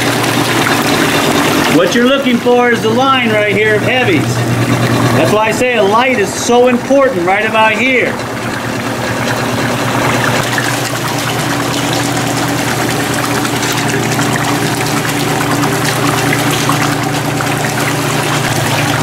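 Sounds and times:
machine hum: 0:00.0 - 0:19.0
water flowing across deck: 0:00.0 - 0:19.0.

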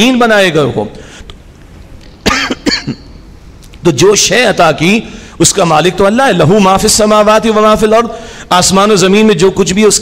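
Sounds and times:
man coughing: 0:02.2 - 0:03.1.

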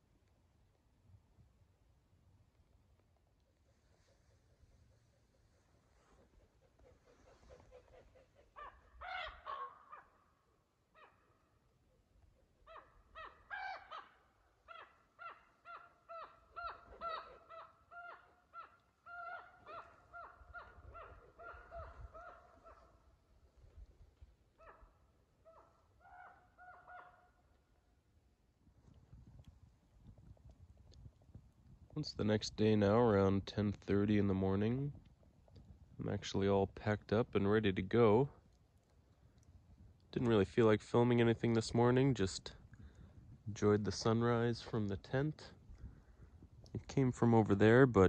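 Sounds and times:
birds calling: 0:05.0 - 0:10.2, 0:12.0 - 0:23.2.

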